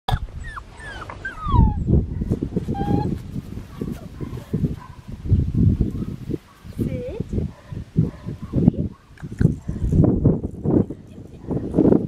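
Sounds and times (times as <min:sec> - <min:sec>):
puppy whining: 0:00.1 - 0:02.0, 0:02.6 - 0:03.2.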